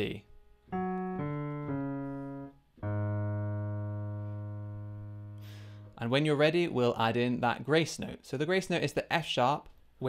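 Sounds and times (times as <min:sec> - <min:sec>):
low piano notes: 0:00.0 - 0:06.6.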